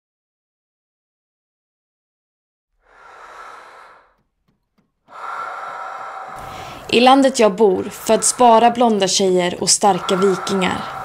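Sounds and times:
woman breathing: 0:02.8 - 0:11.0
woman speaking: 0:06.9 - 0:11.0.

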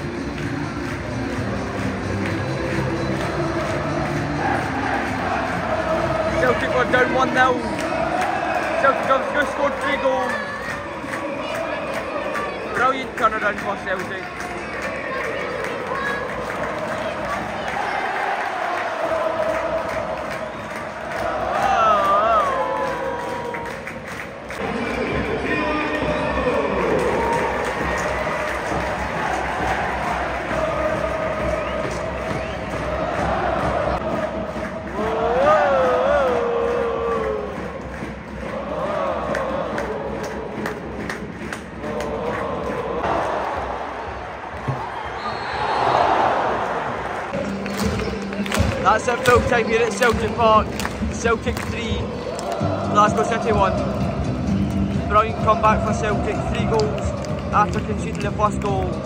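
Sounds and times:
crowd singing and chanting: 0:00.0 - 0:23.0, 0:24.5 - 0:44.8, 0:46.6 - 0:59.0
crowd cheering: 0:00.0 - 0:59.0.

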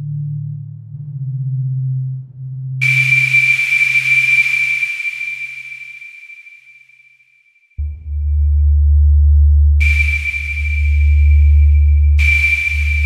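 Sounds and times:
deep held synth bass notes: 0:00.0 - 0:02.8, 0:07.8 - 0:13.0
hiss: 0:02.8 - 0:06.5, 0:09.8 - 0:13.0
high whistle-like synth tone: 0:02.8 - 0:08.0, 0:09.8 - 0:13.0.

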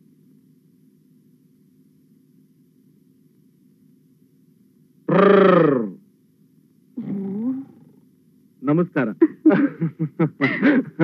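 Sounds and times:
person's drawn-out vocal cry: 0:05.1 - 0:06.0.

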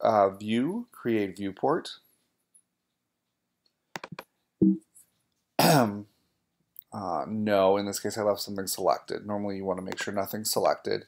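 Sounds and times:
computer mouse clicks: 0:03.9 - 0:04.3.

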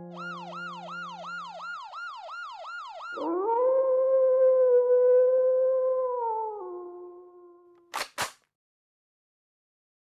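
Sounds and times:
wolf howl: 0:00.2 - 0:07.7.

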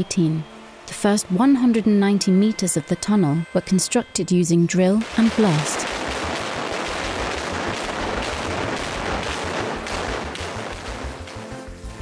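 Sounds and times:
background music: 0:00.0 - 0:12.0
crashing rock: 0:05.0 - 0:11.6
rapid blast detonations: 0:05.0 - 0:12.0.

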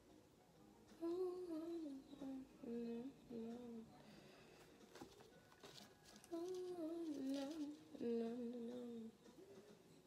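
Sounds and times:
woman singing: 0:01.0 - 0:03.9, 0:06.3 - 0:09.2
rustling of wet plaster bandage: 0:04.6 - 0:07.9.

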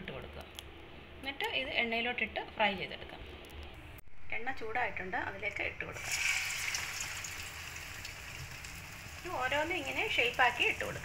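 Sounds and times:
batter sizzling in hot oil: 0:06.0 - 0:11.0.

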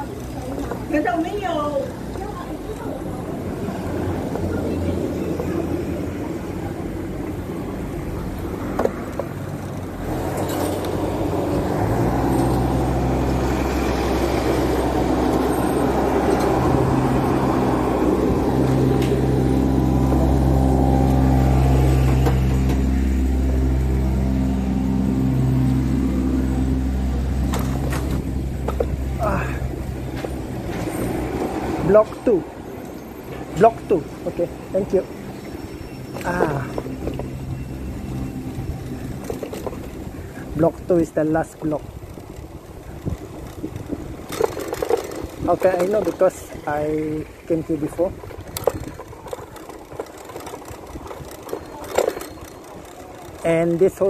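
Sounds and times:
ride-on lawn mower engine running: 0:00.0 - 0:54.0.

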